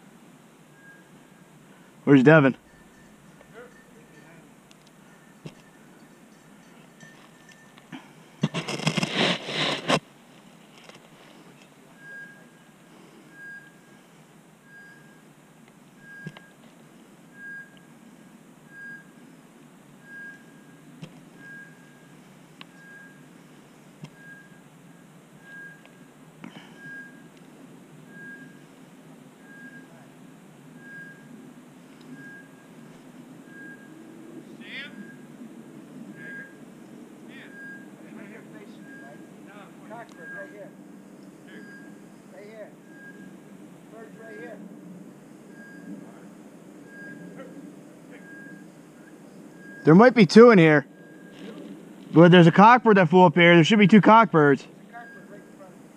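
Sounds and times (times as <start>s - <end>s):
beeper collar short beeps: 12.0s - 12.7s, 16.0s - 16.6s, 22.7s - 23.3s, 26.6s - 27.3s, 29.5s - 30.1s, 36.2s - 36.6s, 37.4s - 38.0s, 38.7s - 39.3s, 39.9s - 40.7s, 41.5s - 42.1s, 42.8s - 43.4s, 45.5s - 46.1s, 46.9s - 48.7s, 54.9s - 55.6s.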